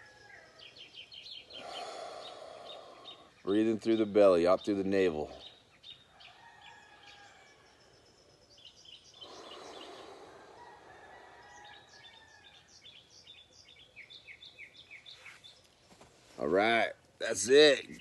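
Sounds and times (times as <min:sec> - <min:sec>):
small birds chirping: 0:00.0 - 0:18.0
person breathing softly: 0:01.5 - 0:03.4, 0:09.2 - 0:11.8.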